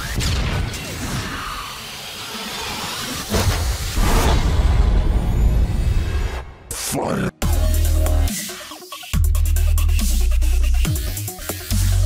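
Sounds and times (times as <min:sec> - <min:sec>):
steady steam-like hiss: 0:01.0 - 0:04.0.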